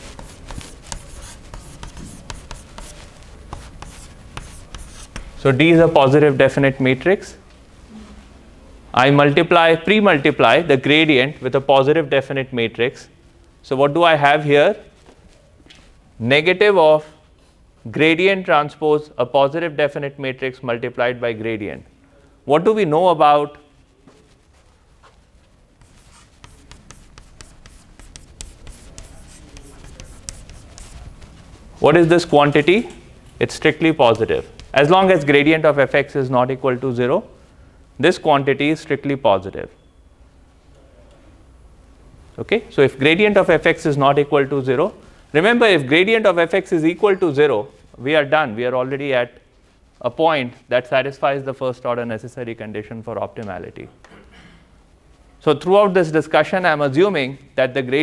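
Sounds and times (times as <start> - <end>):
chalk writing on blackboard: 0.0 - 5.4, 25.8 - 31.4.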